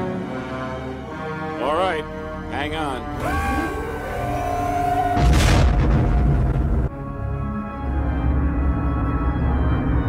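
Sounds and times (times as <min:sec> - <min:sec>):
deep boom with rushing noise: 0:05.2 - 0:06.9.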